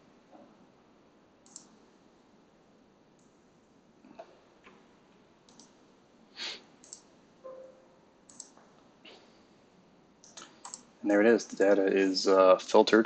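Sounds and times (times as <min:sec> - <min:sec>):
faint computer mouse clicks: 0:01.4 - 0:01.8, 0:05.5 - 0:05.8, 0:06.8 - 0:07.1, 0:08.3 - 0:08.6, 0:10.2 - 0:10.9.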